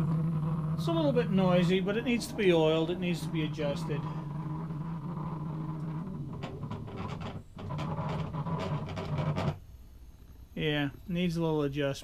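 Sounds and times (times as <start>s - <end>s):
cnc motors droning: 0.0s - 4.3s.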